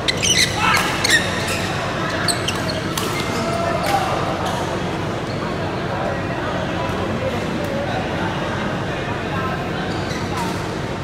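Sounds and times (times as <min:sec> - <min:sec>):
shoes squeaking on court floor: 0:00.0 - 0:03.5.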